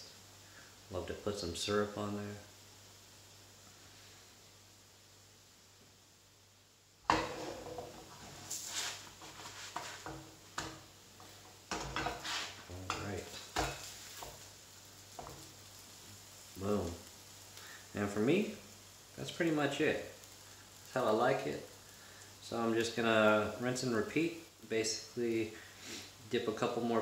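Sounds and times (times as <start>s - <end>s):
bread sizzling in butter: 0.0s - 27.0s
spatula scraping frying pan: 7.1s - 14.5s.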